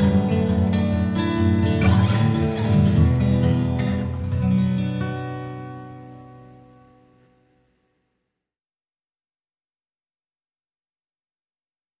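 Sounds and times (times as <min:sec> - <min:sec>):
faint recording hiss: 0:00.1 - 0:08.3.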